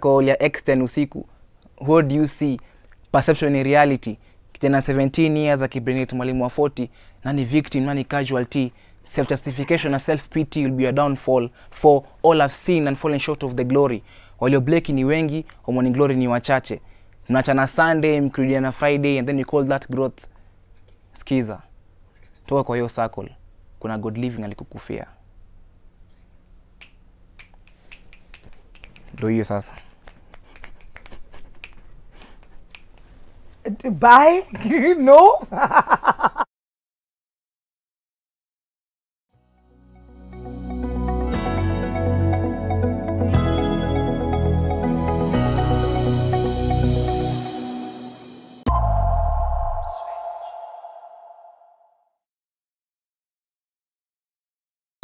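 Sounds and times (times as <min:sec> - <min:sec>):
finger snaps: 0:26.8 - 0:33.1
faint high swish: 0:48.2 - 0:52.1
deep electronic boom: 0:48.7 - 0:52.0.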